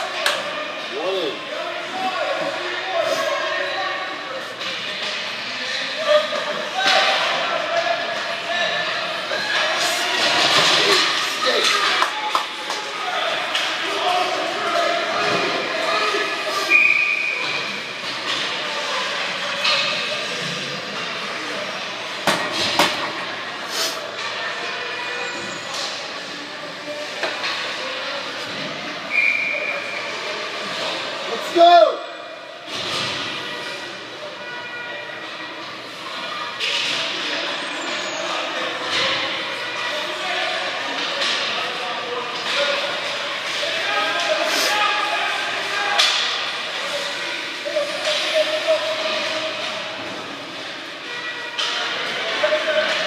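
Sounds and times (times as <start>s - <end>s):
spectators talking and calling out: 0.0s - 53.0s
pucks and sticks knocking boards: 45.9s - 46.6s.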